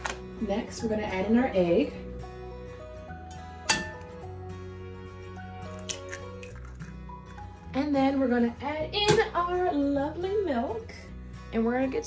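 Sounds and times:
background music: 0.0s - 12.0s
egg cracking on bowl rim: 5.6s - 7.5s.

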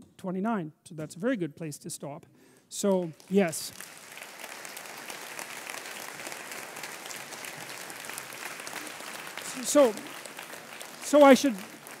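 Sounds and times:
audience applauding: 2.8s - 12.0s.

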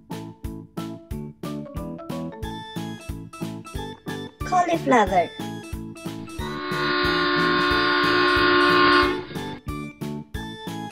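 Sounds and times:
children's background music: 0.0s - 10.9s
cartoon train whistle: 6.3s - 9.6s.

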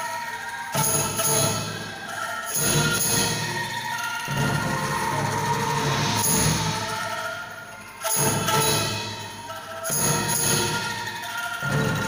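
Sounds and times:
bamboo angklung rattling chords: 0.6s - 12.0s.

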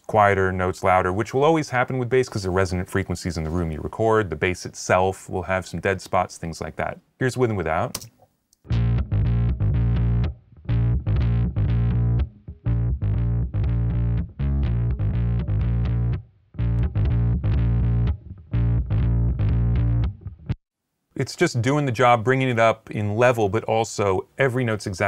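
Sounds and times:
distorted fuzz bass guitar riff: 8.7s - 20.6s.

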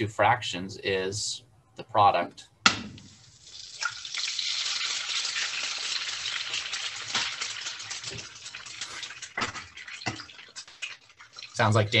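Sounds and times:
food sizzling in a frying pan: 3.1s - 12.0s.

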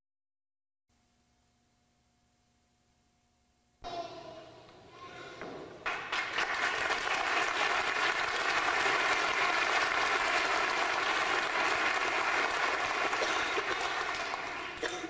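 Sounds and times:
audience applauding: 5.8s - 15.0s.

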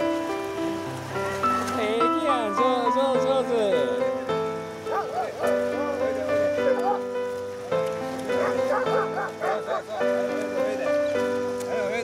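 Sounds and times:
background music: 0.0s - 12.0s
dog giving high cries: 4.9s - 5.6s, 8.4s - 10.2s.

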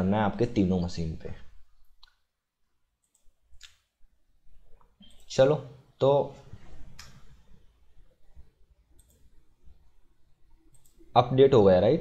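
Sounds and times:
computer keys and mouse clicking: 3.0s - 3.9s, 4.7s - 5.3s, 8.9s - 9.3s, 10.7s - 11.1s.

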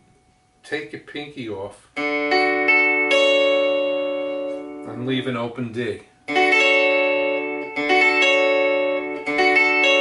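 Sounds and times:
electric guitar chord ringing: 2.0s - 10.0s.

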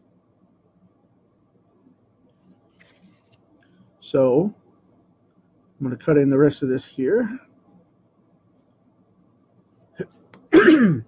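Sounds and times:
man clearing throat: 10.0s - 11.0s.

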